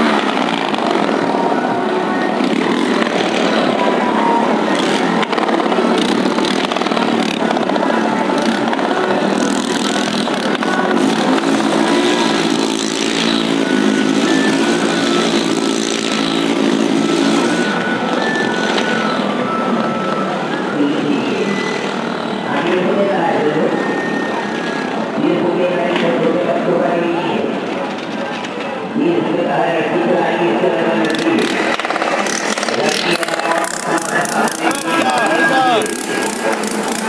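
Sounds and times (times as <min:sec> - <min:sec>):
motorcycle engines roaring: 0:00.0 - 0:37.0.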